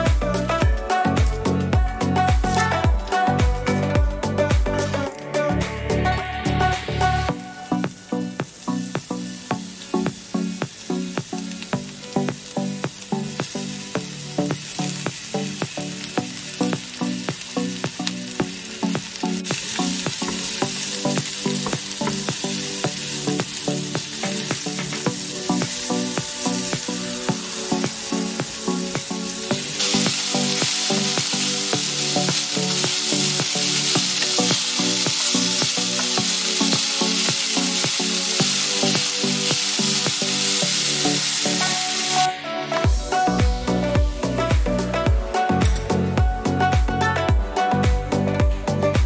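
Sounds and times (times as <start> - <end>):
music: 0.0 - 49.0
vegetables sizzling in hot oil: 6.9 - 42.3.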